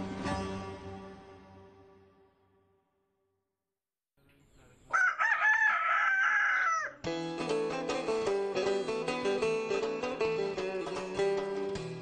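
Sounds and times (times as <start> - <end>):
plucked-string music: 7.1 - 12.0.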